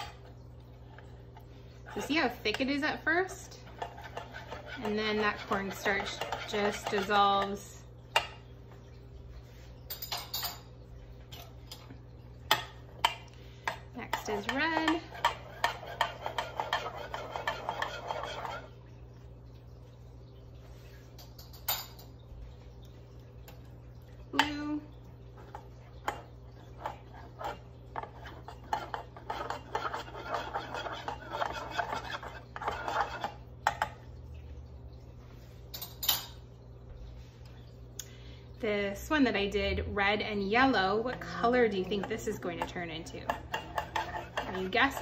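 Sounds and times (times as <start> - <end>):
spoon stirring paint: 3.5 - 7.6, 12.5 - 18.8, 25.4 - 34.0, 41.2 - 45.0
metal spoon scraping metal tin: 27.3 - 33.4, 43.4 - 45.0.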